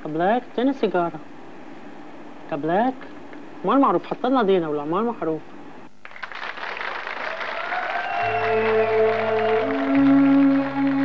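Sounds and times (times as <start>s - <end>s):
audience applauding: 6.0s - 11.0s
faint musical tone: 8.1s - 11.0s.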